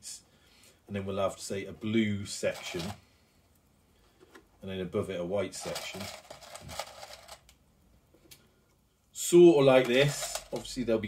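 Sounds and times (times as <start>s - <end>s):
plastic pieces clicking in a tub: 5.6s - 7.5s, 9.7s - 10.8s.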